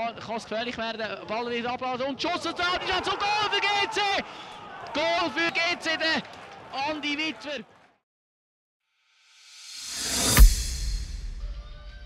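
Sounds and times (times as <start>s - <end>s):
man shouting goal call: 2.4s - 4.2s.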